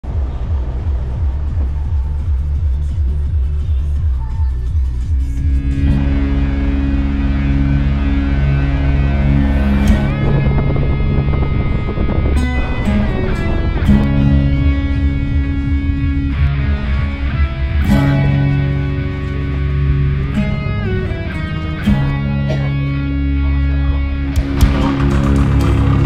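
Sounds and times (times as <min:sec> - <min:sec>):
throbbing low beat: 0:00.0 - 0:26.0
guitar-driven rock music: 0:05.1 - 0:26.0
sustained chords: 0:05.1 - 0:26.0.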